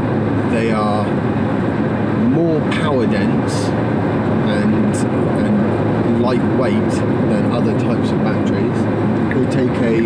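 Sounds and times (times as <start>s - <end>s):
road and tyre noise in car: 0.0s - 10.0s
man speaking: 0.5s - 1.2s, 2.2s - 3.7s, 4.5s - 10.0s.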